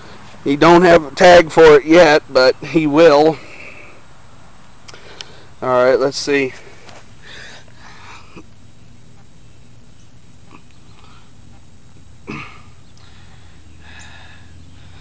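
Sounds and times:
steady low hum: 0:00.0 - 0:15.0
person exhaling breathily: 0:12.3 - 0:15.0.

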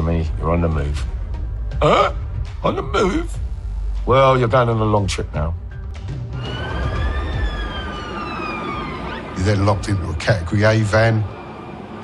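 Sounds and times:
police siren wailing: 0:06.2 - 0:12.0.

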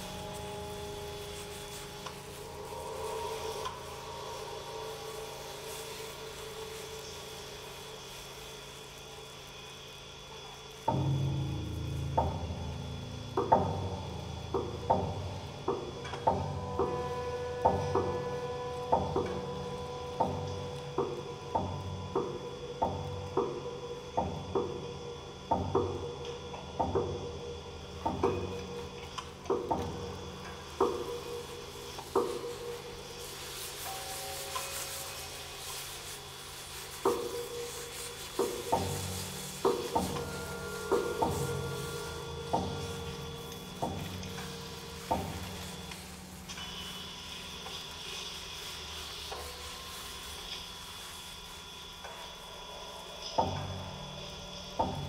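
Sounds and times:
sustained rubbing tones: 0:00.0 - 0:08.4, 0:30.6 - 0:53.3
ringing piano strings: 0:37.7 - 0:50.4.

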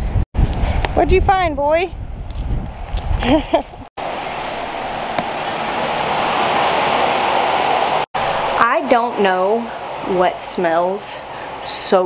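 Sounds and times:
rushing wind: 0:00.0 - 0:12.0
woman laughing: 0:03.2 - 0:03.9.

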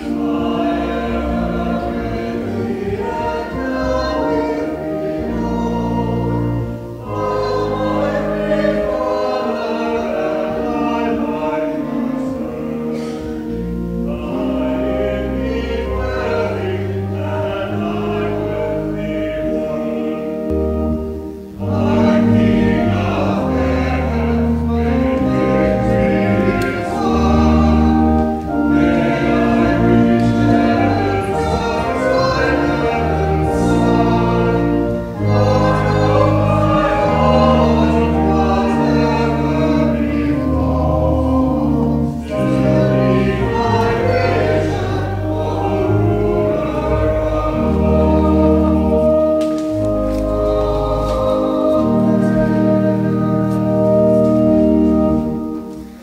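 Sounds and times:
organ chords: 0:00.0 - 0:56.0
voices singing a hymn: 0:00.0 - 0:56.0.

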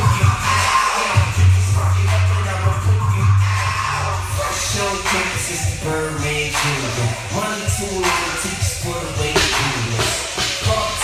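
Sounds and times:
hip-hop music with deep bass: 0:00.0 - 0:11.0.

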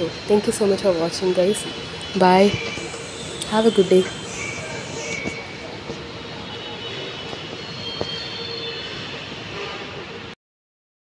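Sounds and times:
faint high whining tones: 0:00.0 - 0:10.4.

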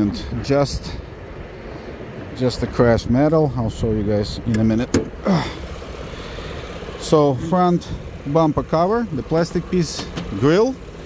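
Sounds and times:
car engine idling: 0:03.9 - 0:11.0
car hood click: 0:04.5 - 0:05.2.

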